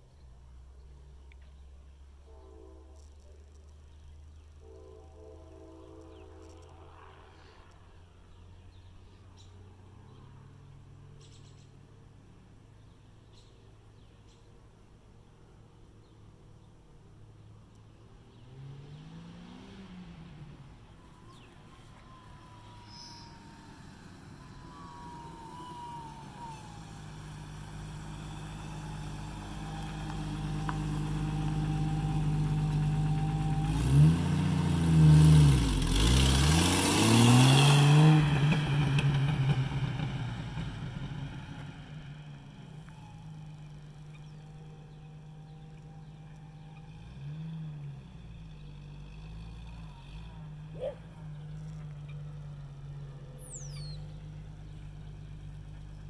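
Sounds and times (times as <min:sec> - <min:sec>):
car driving past: 0:18.0 - 0:56.0.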